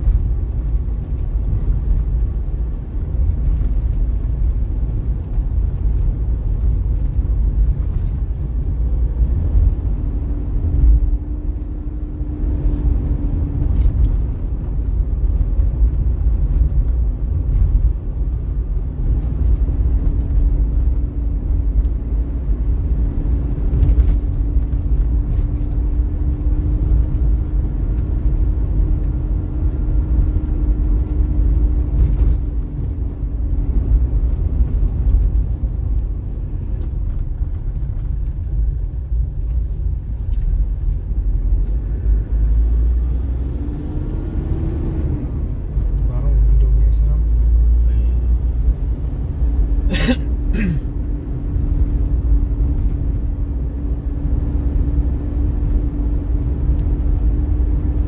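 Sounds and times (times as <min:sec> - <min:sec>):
vehicle engine and road noise: 0:00.0 - 0:58.0.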